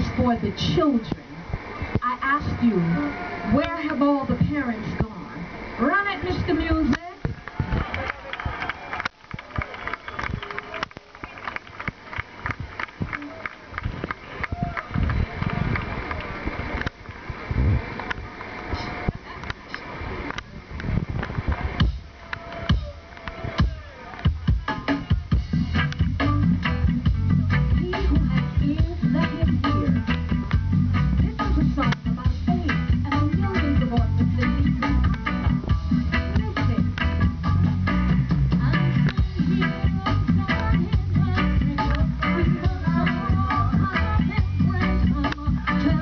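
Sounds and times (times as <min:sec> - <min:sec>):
heavy bass line: 0:20.6 - 0:46.0
live reggae band: 0:21.3 - 0:46.0.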